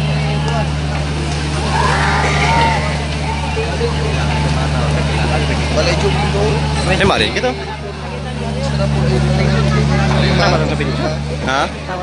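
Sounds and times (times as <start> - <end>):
crowd talking and calling: 0.0 - 12.0
low engine drone: 0.0 - 12.0.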